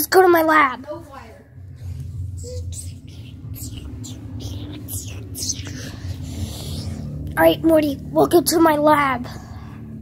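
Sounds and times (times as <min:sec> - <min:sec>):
low rumble: 0:00.7 - 0:10.0.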